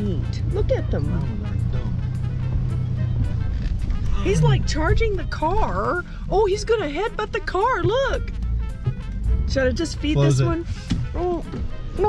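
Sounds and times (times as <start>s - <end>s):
road noise: 0.0s - 12.0s
truck engine drone: 0.0s - 12.0s.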